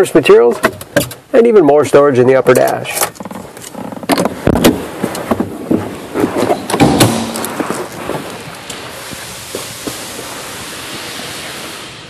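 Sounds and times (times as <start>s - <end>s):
steady hiss: 4.4s - 12.0s.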